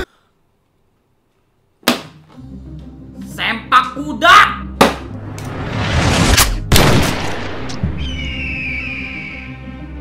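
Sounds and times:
dramatic music: 2.4s - 10.0s
gunshot bang: 6.2s - 7.9s.

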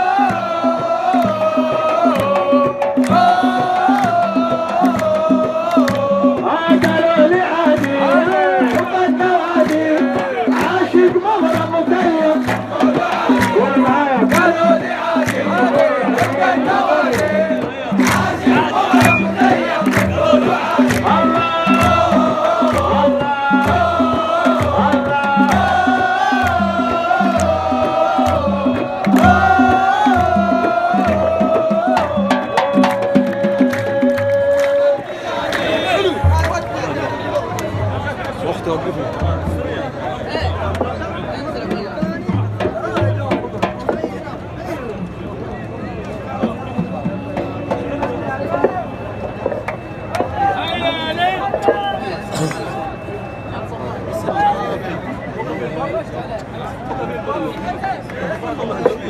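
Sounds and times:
frame drums beating: 0.0s - 34.7s, 40.4s - 44.3s
crowd chanting in unison: 0.0s - 44.0s.

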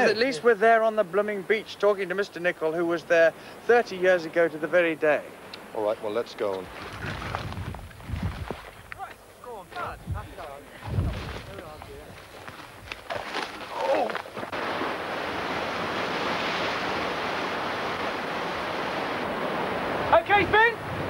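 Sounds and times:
waves breaking on rocks: 13.0s - 21.0s.

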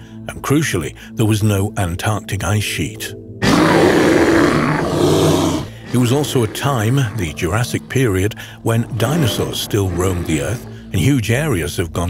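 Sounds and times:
dinosaur roar: 3.4s - 11.0s.

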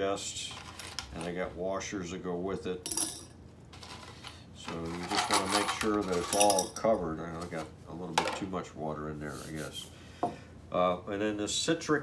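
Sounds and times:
screws clinking into glass jar: 5.0s - 6.9s.

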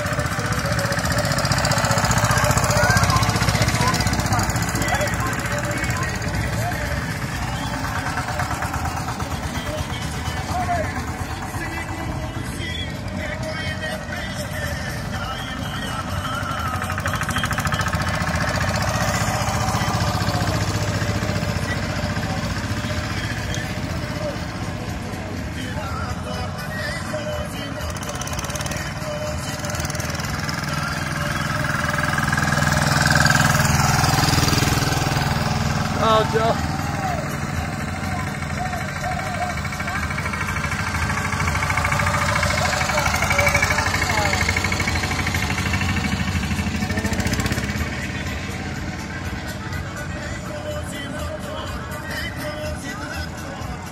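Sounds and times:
music: 0.0s - 53.9s
voices: 0.0s - 53.9s
walking tractor engines chugging: 0.0s - 53.9s.

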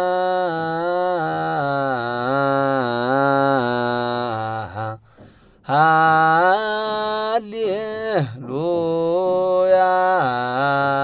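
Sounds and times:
man chanting a hymn: 0.0s - 5.0s, 5.7s - 11.0s.

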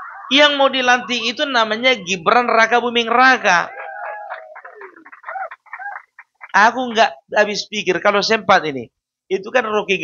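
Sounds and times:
chicken call falling in pitch: 3.7s - 6.3s.

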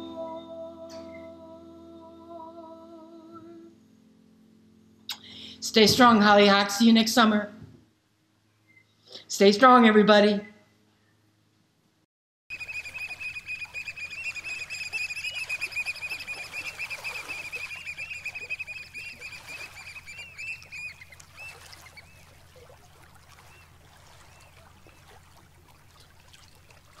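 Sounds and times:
low steady hum: 0.0s - 27.0s
chorus of bird chirps: 12.5s - 22.7s, 23.4s - 25.1s.

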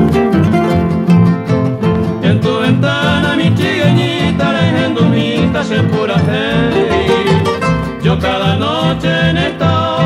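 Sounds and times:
harp and guitars playing polka: 0.0s - 10.0s
plucked double bass: 0.0s - 10.0s.

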